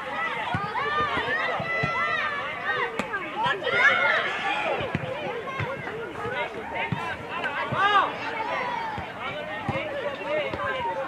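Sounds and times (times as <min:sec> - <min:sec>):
children calling and shouting: 0:00.0 - 0:11.0.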